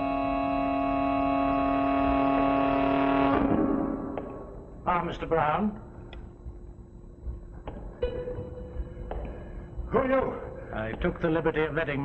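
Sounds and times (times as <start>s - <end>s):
sustained organ chord: 0.0s - 4.9s.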